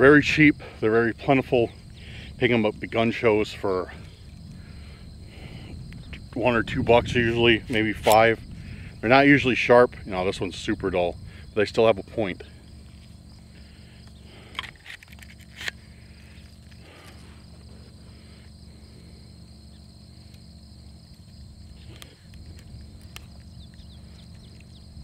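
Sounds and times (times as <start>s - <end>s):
crickets chirring: 0.0s - 25.0s
low steady rumble: 0.0s - 25.0s.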